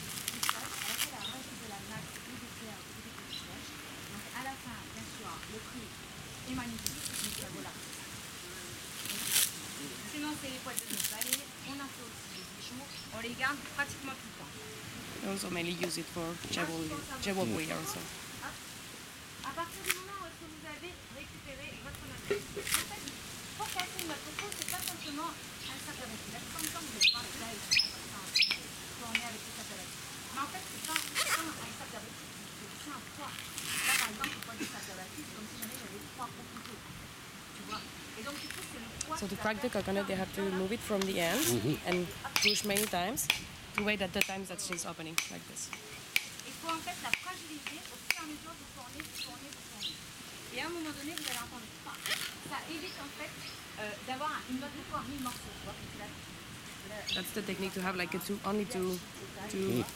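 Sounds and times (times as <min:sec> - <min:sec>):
fibres tearing: 0:00.0 - 0:01.3, 0:06.7 - 0:07.7, 0:08.9 - 0:09.6, 0:10.6 - 0:11.5, 0:19.7 - 0:20.1, 0:22.3 - 0:25.1, 0:26.5 - 0:26.9, 0:30.6 - 0:31.7, 0:33.2 - 0:34.6, 0:41.0 - 0:41.8, 0:50.9 - 0:52.6
coconut husk cracking: 0:00.0 - 0:02.3, 0:06.5 - 0:12.4, 0:19.4 - 0:20.2, 0:21.9 - 0:34.8, 0:37.6 - 0:39.4, 0:40.8 - 0:52.9, 0:55.0 - 0:55.6, 0:59.5 - 0:59.9
voices talking: 0:00.0 - 0:18.8, 0:19.4 - 0:59.9.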